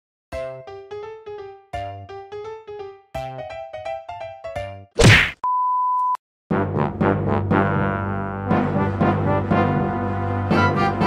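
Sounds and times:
loud whack hit: 5.0s - 5.4s
bright background music notes: 6.6s - 11.0s.

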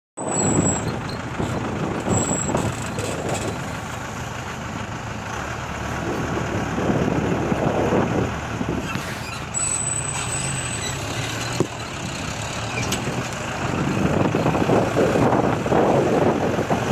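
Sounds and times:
diesel engine running: 0.2s - 16.9s
wind buffeting microphone: 5.9s - 9.0s, 11.6s - 16.9s.

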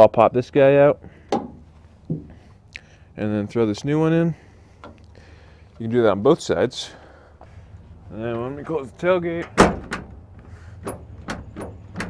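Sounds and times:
tailgate knocking shut: 9.4s - 10.2s, 10.8s - 12.0s.

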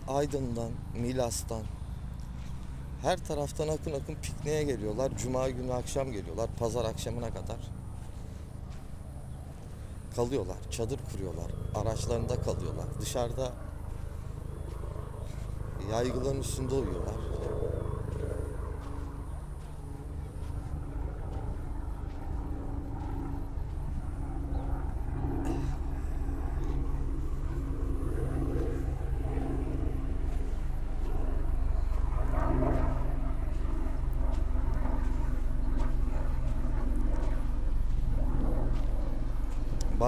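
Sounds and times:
low engine-like drone: 0.0s - 40.0s
low outdoor rumble: 0.0s - 40.0s.

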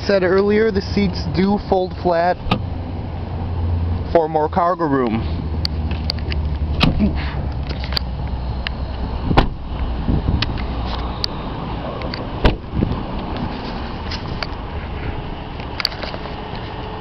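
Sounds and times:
car door thudding shut: 6.8s - 7.3s, 9.3s - 9.7s, 12.4s - 12.9s.

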